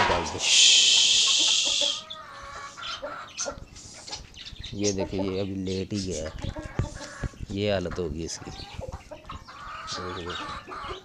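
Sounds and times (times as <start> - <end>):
harsh hissing rush: 0.0 - 2.0
chickens clucking: 0.0 - 11.0.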